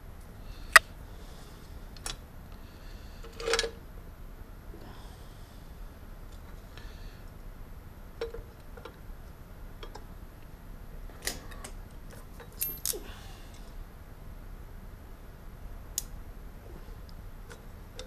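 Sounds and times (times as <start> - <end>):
low steady hum: 0.0 - 18.0
hand tools and wires clicking: 11.2 - 13.6.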